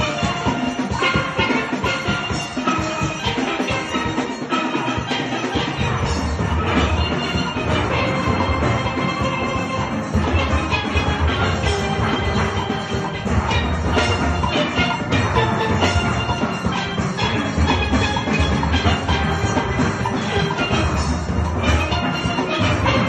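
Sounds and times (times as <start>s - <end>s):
steel pan band playing: 0.0s - 23.0s.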